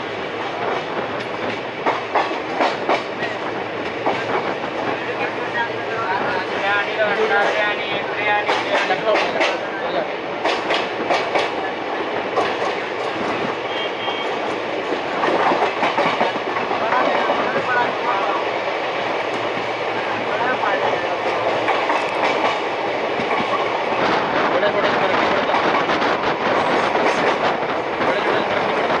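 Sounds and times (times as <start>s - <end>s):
train running noise: 0.0s - 29.0s.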